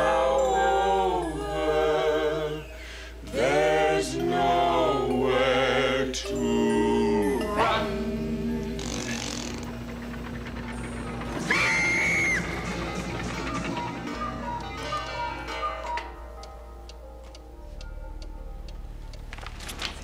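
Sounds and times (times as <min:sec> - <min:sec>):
pendulum wall clock ticking: 0:00.0 - 0:20.0
soundtrack music with high note: 0:06.3 - 0:19.5.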